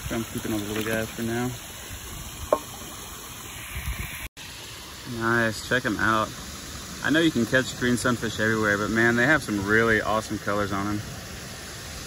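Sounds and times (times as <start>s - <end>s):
water sloshing and dripping: 0.0s - 8.1s
sharp water plop: 0.1s - 1.3s, 2.4s - 3.0s.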